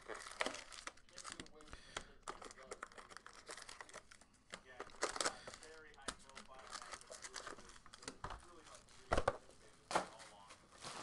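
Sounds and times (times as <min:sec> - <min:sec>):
foil card packs crinkling: 0:00.0 - 0:11.0.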